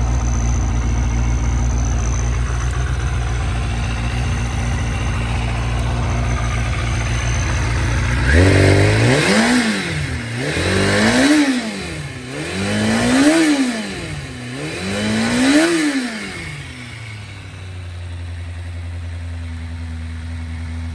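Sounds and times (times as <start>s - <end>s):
motorcycle engine revving and idling: 0.0s - 20.9s.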